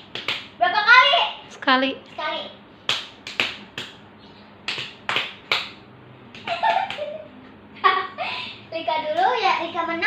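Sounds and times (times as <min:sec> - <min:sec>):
sharp hand claps: 0:00.0 - 0:00.5, 0:02.8 - 0:04.0, 0:04.6 - 0:07.2.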